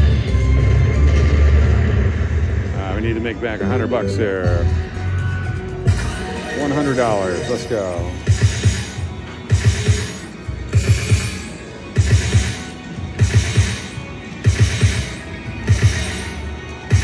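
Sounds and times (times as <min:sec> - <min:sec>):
slot machine game music: 0:00.0 - 0:17.0.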